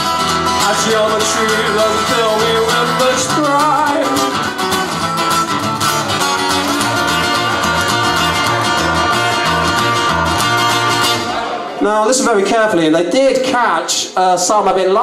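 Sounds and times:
live band guitar music: 0.0s - 12.3s.

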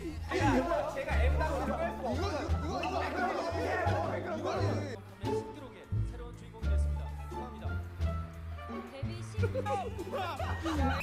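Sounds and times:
voices chattering: 0.0s - 5.3s
background music with bass line: 0.0s - 11.0s.

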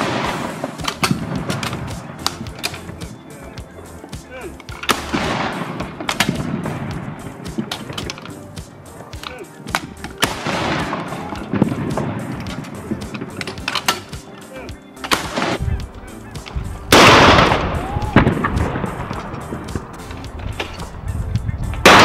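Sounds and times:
gun firing loud report: 0.0s - 3.2s, 4.2s - 8.3s, 9.0s - 14.3s, 15.1s - 20.8s.

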